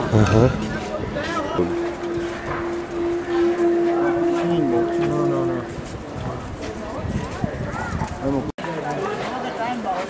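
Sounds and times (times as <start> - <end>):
several people talking: 0.0 - 10.0.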